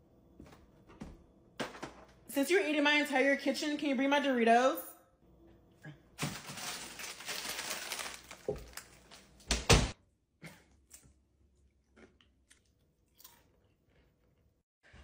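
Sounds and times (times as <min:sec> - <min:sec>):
chips crunching: 0:06.2 - 0:09.2
food packaging rustling: 0:06.2 - 0:09.4.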